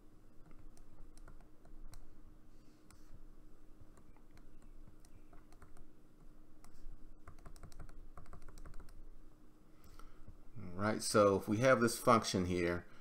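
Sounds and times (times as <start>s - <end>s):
stylus clicking and tapping on tablet: 0.4s - 2.2s, 3.8s - 9.0s.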